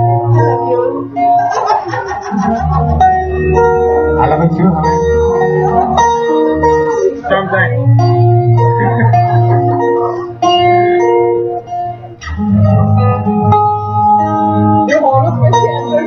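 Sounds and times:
acoustic guitar: 0.0s - 16.0s.

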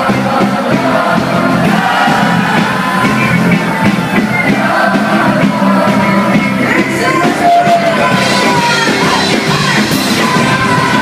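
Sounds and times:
crowd noise: 0.0s - 11.0s
live party band music: 0.0s - 11.0s
person singing: 0.0s - 11.0s.

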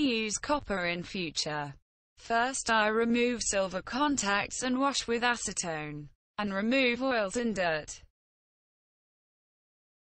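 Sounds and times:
person narrating: 0.0s - 8.1s.

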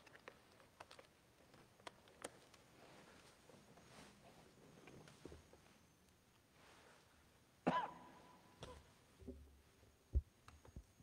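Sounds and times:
person coughing: 7.7s - 8.2s.

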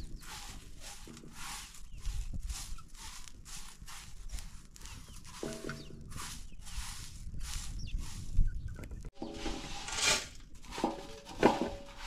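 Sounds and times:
straw whisk sweeping metal pan: 0.0s - 8.4s, 9.1s - 12.0s.

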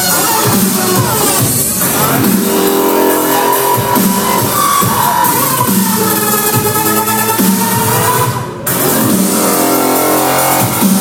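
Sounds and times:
dubstep over club sound system: 0.0s - 11.0s
synth bass sliding down: 0.6s - 11.0s.

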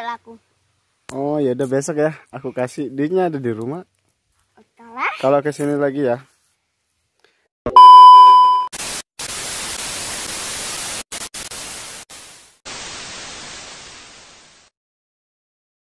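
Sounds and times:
test-tone beep: 7.7s - 8.7s
hissing static: 8.8s - 14.7s.

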